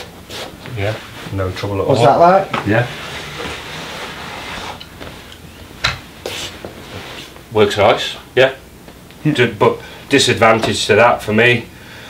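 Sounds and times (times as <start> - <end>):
wheels scraping along carpet: 2.8 - 5.2.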